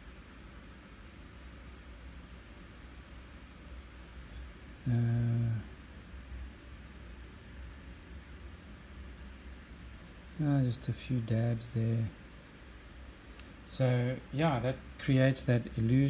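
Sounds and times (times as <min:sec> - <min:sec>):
low hum of room noise: 0:00.0 - 0:16.0
man saying uh: 0:04.8 - 0:05.7, 0:10.4 - 0:12.2, 0:13.7 - 0:16.0.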